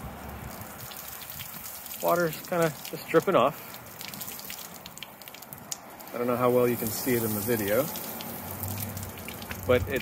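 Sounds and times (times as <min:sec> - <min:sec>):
hose water spattering on hull: 0:00.0 - 0:10.0.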